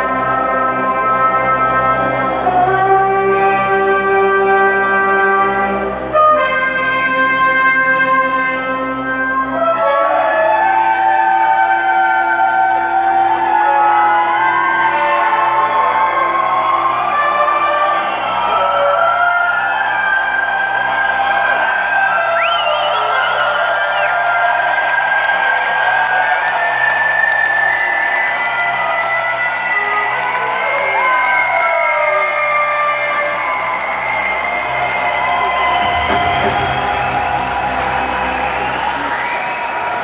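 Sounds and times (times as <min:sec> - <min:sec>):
crowd cheering and clapping: 0:00.0 - 0:40.0
long wavering whistle: 0:09.4 - 0:24.3, 0:30.8 - 0:40.0
recorded intro music: 0:33.3 - 0:40.0.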